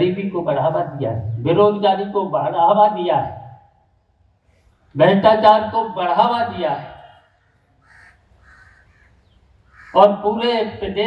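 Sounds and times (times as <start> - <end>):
crow cawing: 7.0 - 10.2.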